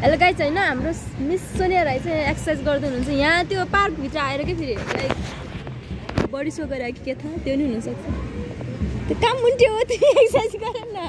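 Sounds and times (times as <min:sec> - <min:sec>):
woman speaking: 0:00.0 - 0:05.2, 0:06.3 - 0:08.0
outdoor background noise: 0:00.0 - 0:11.0.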